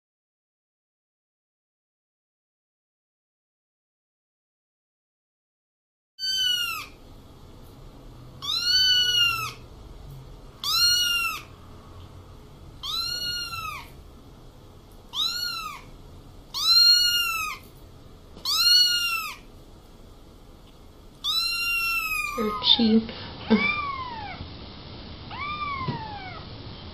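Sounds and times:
kitten meowing: 6.2 - 7.0, 8.4 - 9.6, 10.6 - 11.5, 12.8 - 14.0, 15.1 - 15.9, 16.5 - 17.6, 18.4 - 19.5, 21.2 - 24.4, 25.3 - 26.4.

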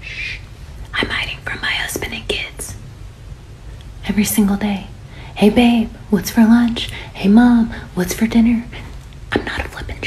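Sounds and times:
person whispering: 0.0 - 2.8, 9.3 - 10.0
steady low hum: 0.0 - 10.0.

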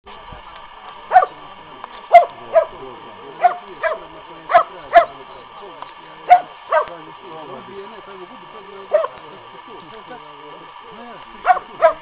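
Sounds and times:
dog barking: 1.1 - 1.4, 2.1 - 2.8, 3.4 - 5.2, 6.3 - 6.9, 8.9 - 9.2, 11.4 - 12.0.

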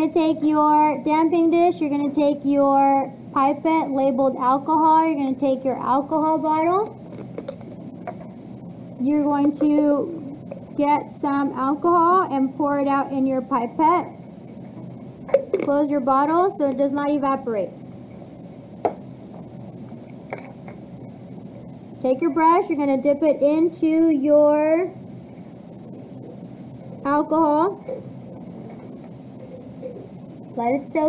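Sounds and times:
low room noise: 0.0 - 31.0.

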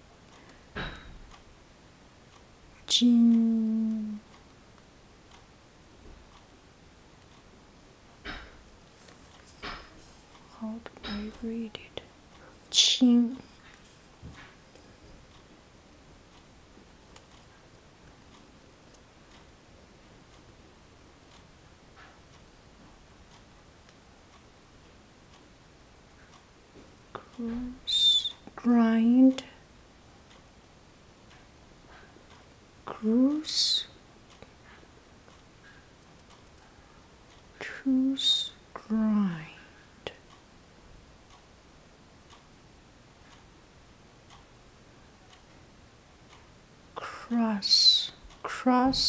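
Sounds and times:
clock ticking faintly: 0.0 - 49.0
faint regular ticks: 31.2 - 40.5, 42.2 - 43.6.

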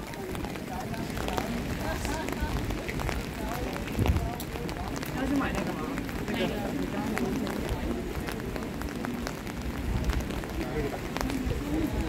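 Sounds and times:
rain falling on wet street: 0.0 - 12.0.

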